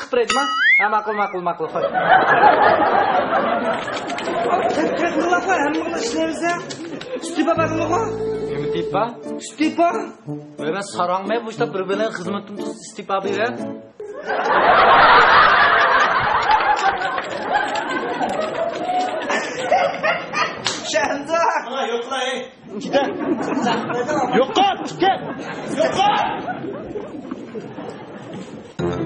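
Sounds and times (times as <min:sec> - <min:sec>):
group laughter: 0:01.2 - 0:08.0, 0:14.0 - 0:20.9, 0:22.6 - 0:28.7
indistinct office chatter: 0:01.8 - 0:07.6.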